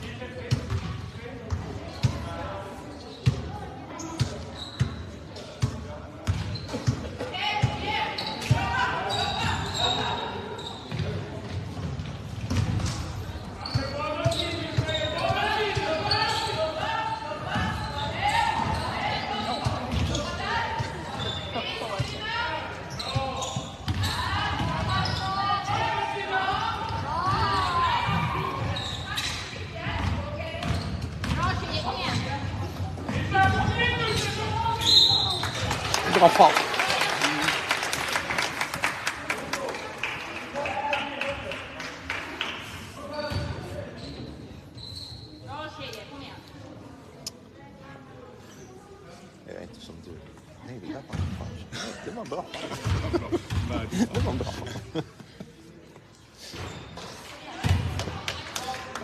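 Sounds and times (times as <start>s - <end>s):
crowd shouting and talking: 0.0s - 59.0s.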